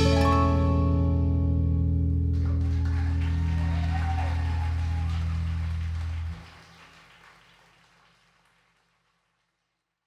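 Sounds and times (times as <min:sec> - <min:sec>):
live band low chord: 0:00.0 - 0:06.4.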